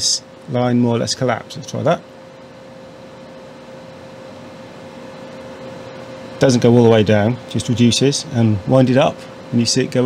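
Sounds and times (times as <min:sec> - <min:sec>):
equipment hiss and hum: 0:00.0 - 0:10.0.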